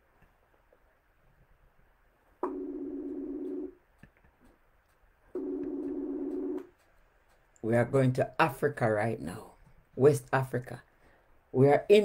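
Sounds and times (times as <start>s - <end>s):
phone ringback tone: 2.4s - 3.8s, 5.4s - 6.7s.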